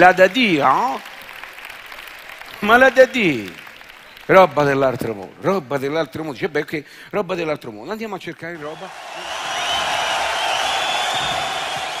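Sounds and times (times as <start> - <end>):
audience applauding and cheering: 0.0 - 5.4, 8.5 - 12.0
whistles from audience: 9.1 - 12.0.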